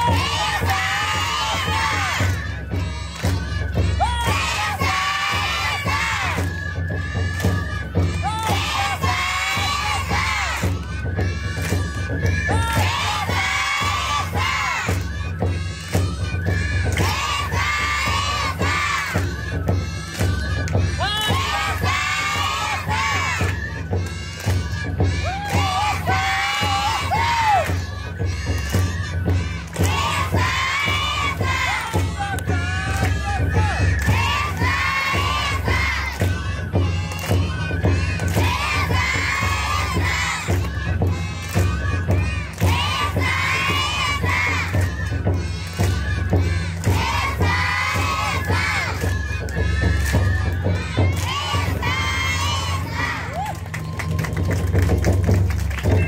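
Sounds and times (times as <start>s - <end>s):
children chanting in unison: 0.0s - 53.4s
festival music: 0.0s - 56.0s.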